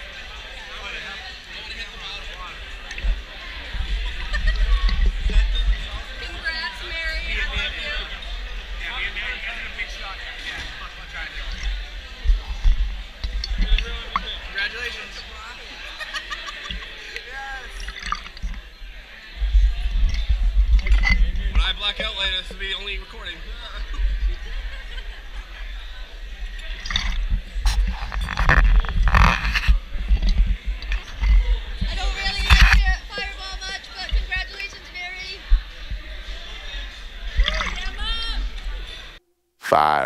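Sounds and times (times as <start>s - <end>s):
voices in a crowded room: 0.0s - 40.0s.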